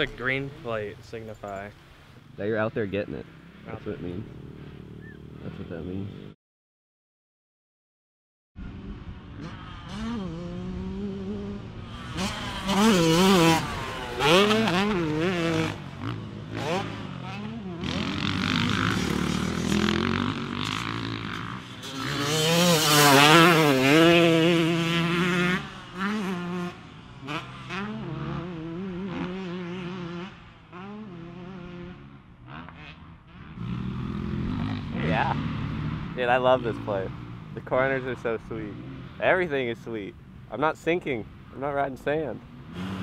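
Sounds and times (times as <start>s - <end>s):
dirt bike engines revving: 0.0s - 6.4s, 8.6s - 43.0s.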